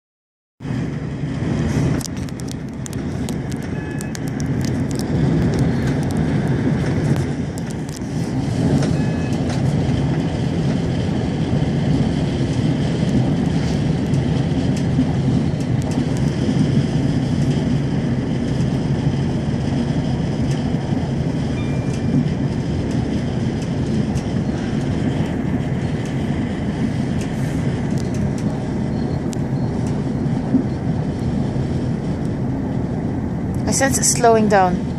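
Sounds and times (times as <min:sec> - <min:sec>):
diesel train rumble: 0:00.6 - 0:34.9.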